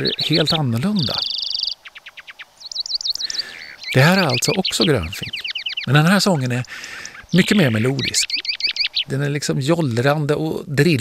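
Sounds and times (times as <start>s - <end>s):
finch singing: 0.0s - 10.2s.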